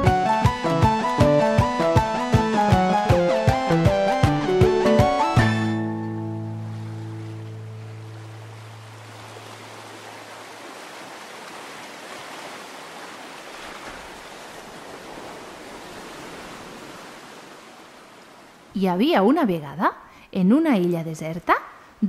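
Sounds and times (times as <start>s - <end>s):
sea surf rushing: 0.0s - 18.8s
held musical chord: 0.2s - 9.0s.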